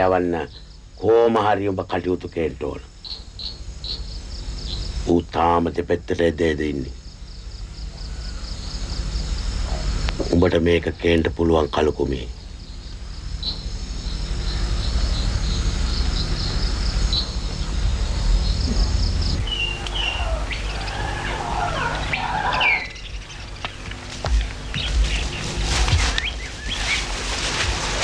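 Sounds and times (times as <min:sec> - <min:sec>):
birds chirping: 0:00.0 - 0:28.0
low outdoor rumble: 0:00.0 - 0:28.0.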